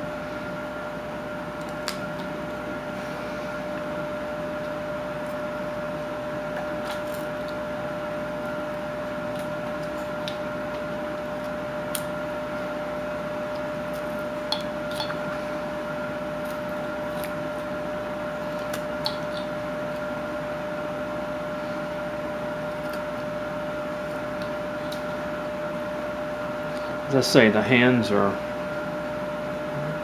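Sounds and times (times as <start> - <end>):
steady hum: 0.0 - 30.0
knife carving wood: 18.4 - 20.1.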